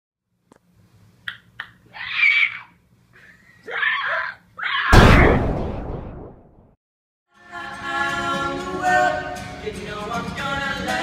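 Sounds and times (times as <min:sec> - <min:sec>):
high-pitched screaming: 0:01.9 - 0:02.8.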